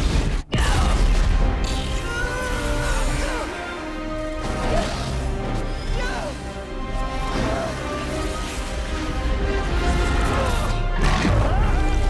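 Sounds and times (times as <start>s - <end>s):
orchestral score: 0.0s - 12.0s.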